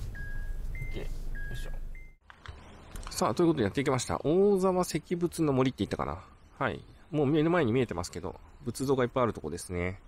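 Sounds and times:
two-tone reverse warning beeps: 0:00.0 - 0:02.2.

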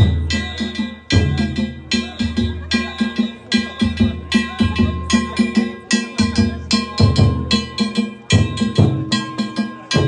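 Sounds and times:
taiko drum thumps: 0:00.0 - 0:03.2, 0:03.8 - 0:10.0
hand-held gongs struck fast: 0:00.0 - 0:10.0.

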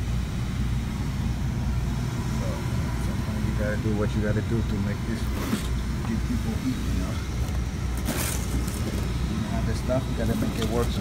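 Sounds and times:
hand rummaging in cardboard box: 0:08.0 - 0:09.0.

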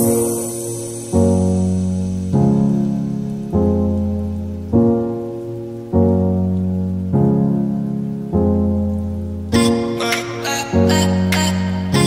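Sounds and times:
slow keyboard chords: 0:00.0 - 0:12.0.

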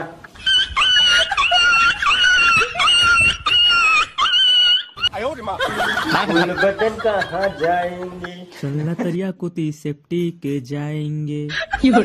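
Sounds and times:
high-pitched crying wail: 0:00.4 - 0:05.1.

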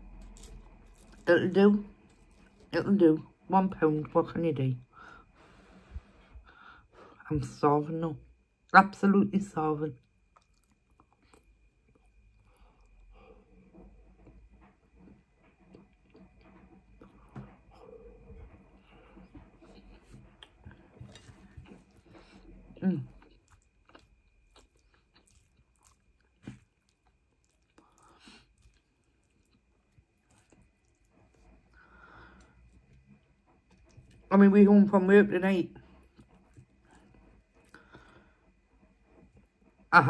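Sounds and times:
soft chewing: 0:00.0 - 0:02.8, 0:10.0 - 0:34.3, 0:35.7 - 0:39.9.

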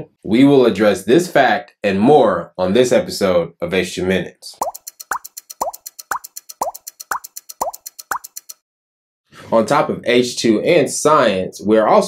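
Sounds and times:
fast high clock ticking: 0:04.6 - 0:08.6
water-drop bloops: 0:04.6 - 0:08.6.

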